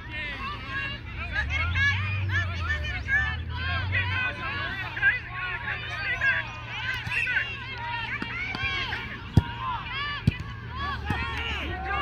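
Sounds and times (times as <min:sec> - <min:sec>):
people calling out: 0:00.0 - 0:12.0.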